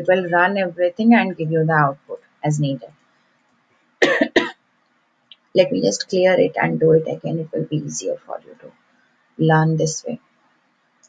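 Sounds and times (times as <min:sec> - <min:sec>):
woman coughing: 0:04.0 - 0:04.5.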